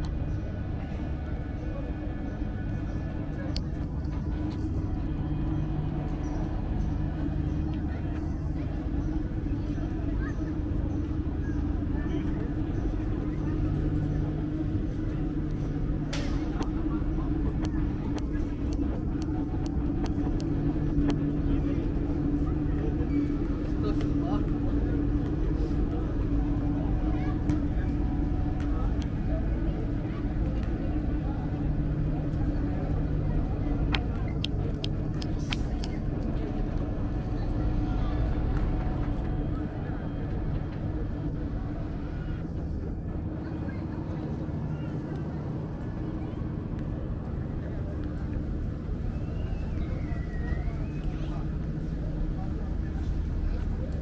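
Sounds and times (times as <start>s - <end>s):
chatter of many voices: 0.0s - 54.0s
low mechanical hum: 0.0s - 54.0s.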